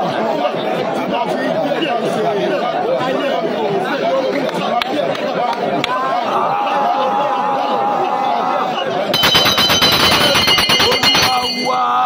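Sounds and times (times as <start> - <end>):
several voices talking: 0.0 - 12.0.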